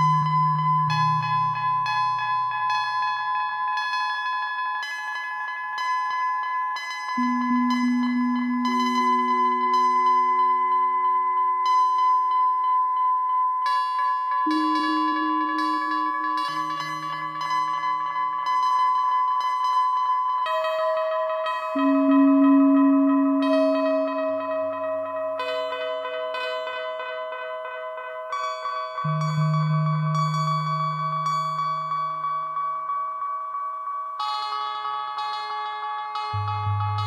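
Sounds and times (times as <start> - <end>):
sustained high synth tones with echoes: 0.0 - 4.3, 6.8 - 27.0, 36.1 - 37.0
long low synth notes: 7.2 - 11.6, 36.4 - 37.0.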